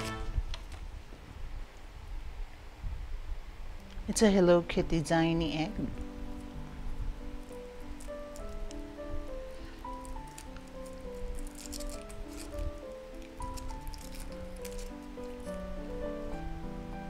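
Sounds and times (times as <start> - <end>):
background music with held notes: 0.0 - 0.5, 3.8 - 17.0
foil crackling as peeled: 6.0 - 16.4.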